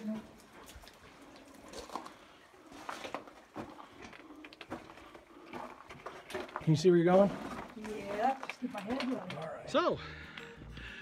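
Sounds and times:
footsteps on gravel: 0.0 - 9.6.

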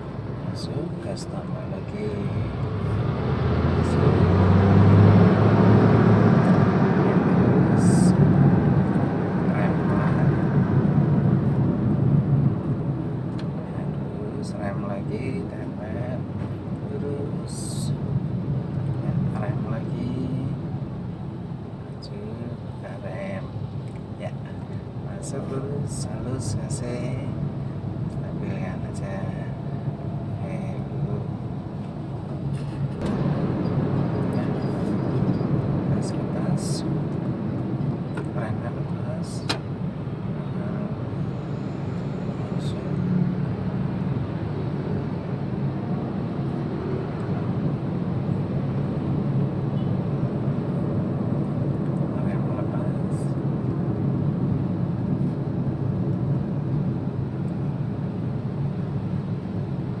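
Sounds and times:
road and engine noise in car: 0.0 - 60.0.

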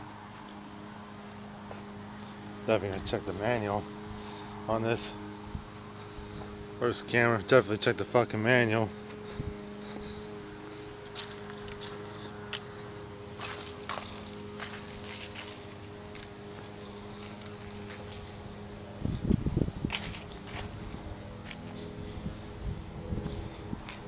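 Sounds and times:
footsteps on grass: 0.0 - 7.2, 8.5 - 24.0
steady low hum: 0.0 - 24.0.

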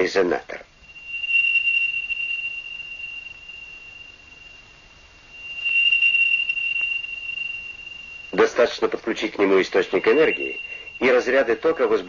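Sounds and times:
steady high-pitched tone: 0.0 - 12.0.

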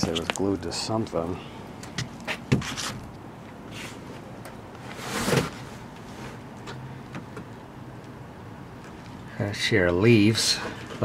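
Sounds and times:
scraping rustle: 2.2 - 3.1, 4.8 - 6.4.

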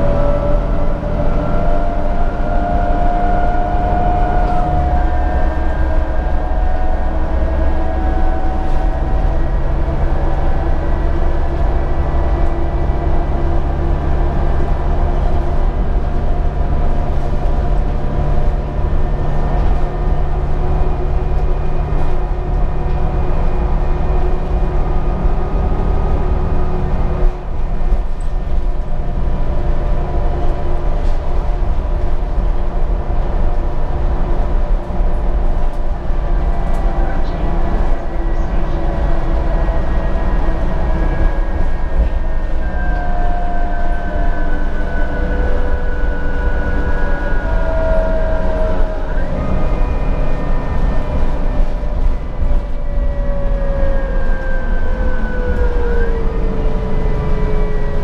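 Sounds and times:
bus engine hum and whine: 0.0 - 58.0
road noise: 0.0 - 58.0.

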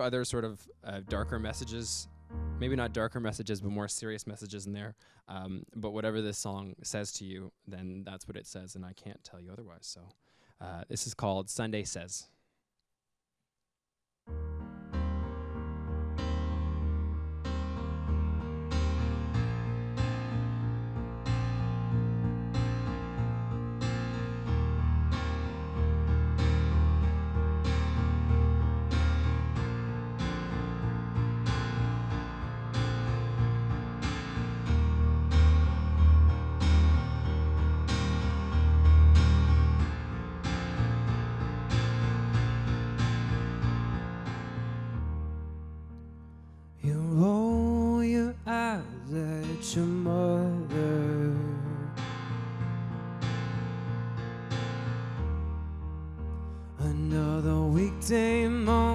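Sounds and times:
sustained low bass notes: 0.9 - 3.4, 18.0 - 44.3
stage piano chords: 0.9 - 3.8, 14.3 - 58.9.

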